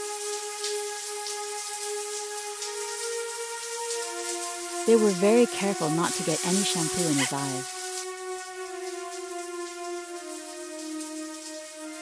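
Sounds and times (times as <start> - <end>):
faint steady hiss: 0.0 - 12.0
soft music of held chords: 0.0 - 12.0.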